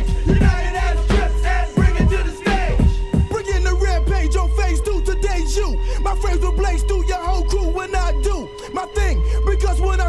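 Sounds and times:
hip hop beat with heavy bass: 0:00.0 - 0:10.0
rapping over a beat: 0:00.0 - 0:10.0.

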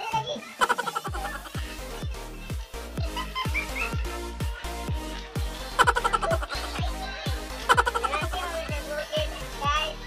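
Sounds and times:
electronic music: 0:00.6 - 0:10.0.

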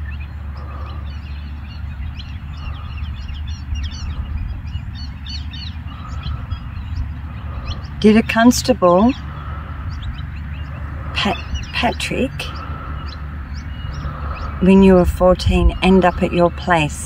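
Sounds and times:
birds chirping and tweeting: 0:00.0 - 0:17.0
steady low rumble: 0:00.0 - 0:17.0.

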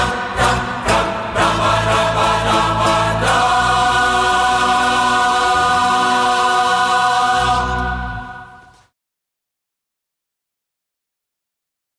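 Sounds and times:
choir with band chord: 0:00.0 - 0:08.8.

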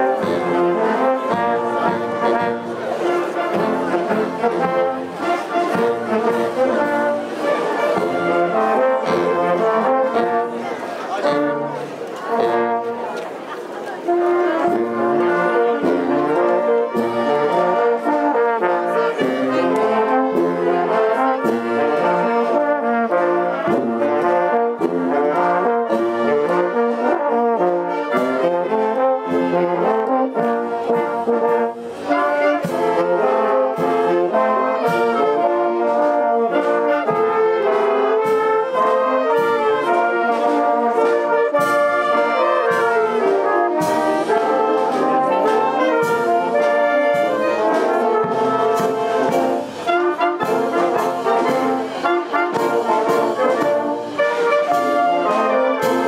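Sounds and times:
wind band playing: 0:00.0 - 0:56.0.

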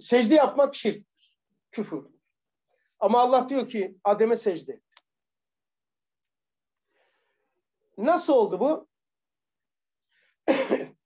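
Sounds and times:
man coughing: 0:10.5 - 0:11.0.

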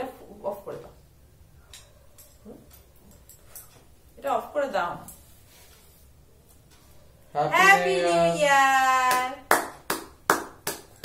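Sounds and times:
man clapping hands: 0:09.1 - 0:11.0.

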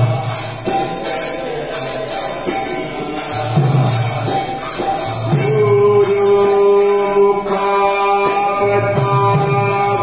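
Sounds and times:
devotional chanting: 0:00.0 - 0:10.0.

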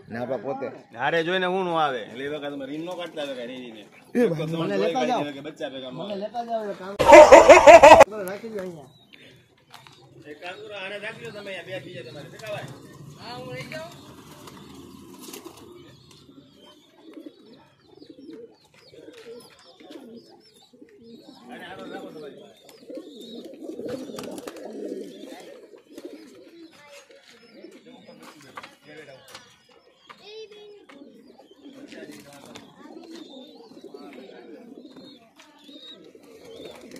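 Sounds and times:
pigeons cooing: 0:07.0 - 0:08.1, 0:10.0 - 0:28.6, 0:29.6 - 0:36.9.

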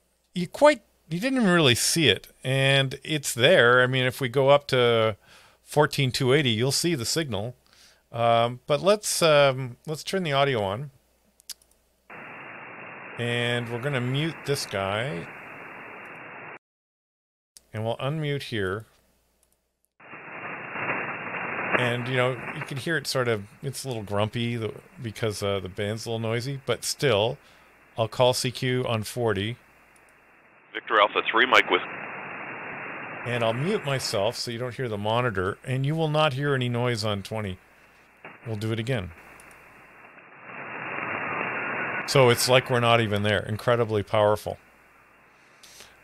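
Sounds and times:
radio static hiss: 0:12.1 - 0:16.6, 0:20.0 - 0:46.0.

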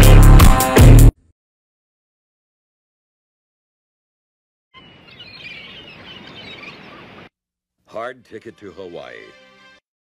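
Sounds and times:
birds chirping: 0:04.8 - 0:07.3.

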